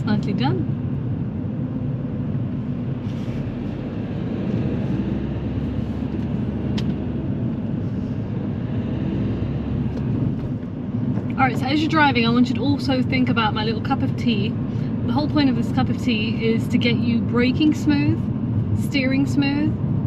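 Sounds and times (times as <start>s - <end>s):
car engine and tyre rumble: 0.0s - 20.0s.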